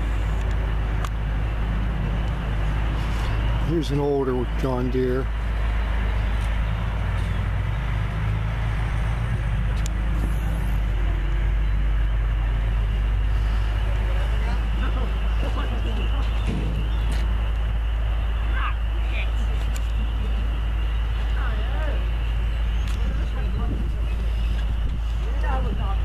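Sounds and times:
engine idling: 0.0 - 26.0.

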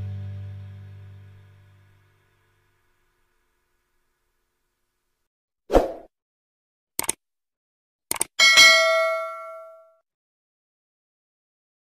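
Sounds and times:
mouse click: 7.0 - 7.2, 8.1 - 8.3
notification bell ding: 8.4 - 10.0.

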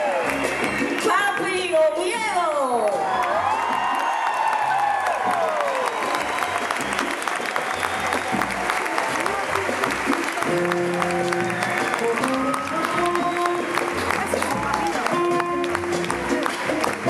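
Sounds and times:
audience applauding: 0.0 - 1.6, 2.9 - 17.0
band playing held notes: 7.7 - 17.0.

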